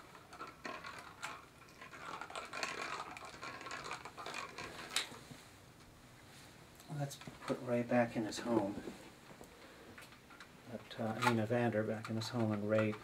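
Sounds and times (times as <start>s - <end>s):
plastic ball rolling on tile floor: 0.0s - 5.4s.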